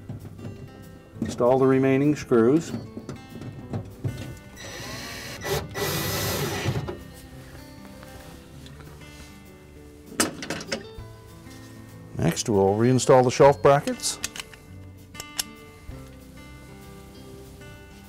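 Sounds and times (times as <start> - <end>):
background music: 0.0 - 18.0
nut driver whirring: 4.6 - 6.9.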